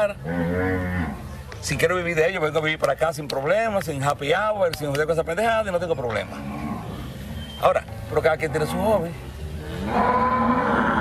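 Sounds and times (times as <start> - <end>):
cow mooing: 6.3 - 7.4, 8.6 - 11.0.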